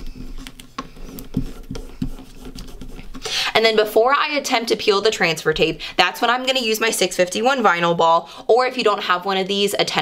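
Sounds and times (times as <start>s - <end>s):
fingertips rubbing tape on wood: 0.0s - 3.3s.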